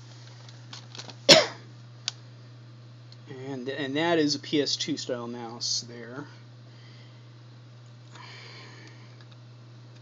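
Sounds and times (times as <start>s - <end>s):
steady low hum: 0.0s - 10.0s
person coughing: 1.3s - 1.7s.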